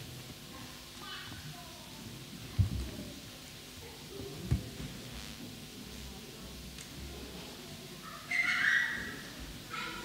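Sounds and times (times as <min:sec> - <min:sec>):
faint low room hum: 0:00.0 - 0:10.0.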